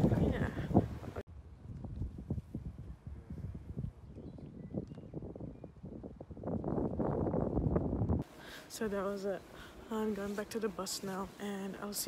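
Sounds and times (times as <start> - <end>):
wind buffeting microphone: 0.0 - 8.4.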